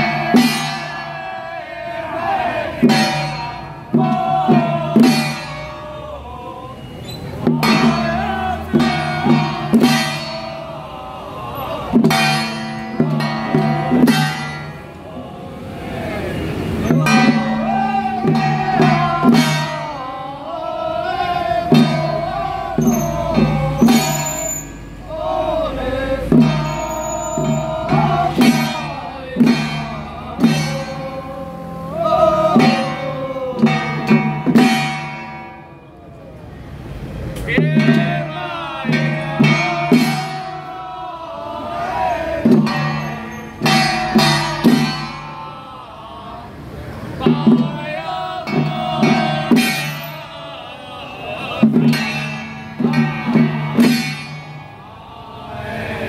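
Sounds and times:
hand drum beats: 0.0 - 1.0, 2.8 - 5.7, 7.5 - 10.6, 12.0 - 14.8, 16.9 - 20.0, 21.6 - 24.3, 26.2 - 26.8, 27.4 - 31.4, 32.3 - 35.6, 37.6 - 40.7, 42.4 - 45.4, 47.2 - 50.1, 51.6 - 54.8
chant-like voices: 0.0 - 36.3, 37.4 - 56.0
sharp ringing strikes: 42.6 - 45.5.

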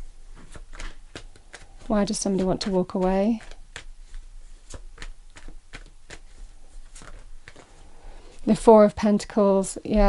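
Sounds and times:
cards shuffled by hand: 0.3 - 8.6.

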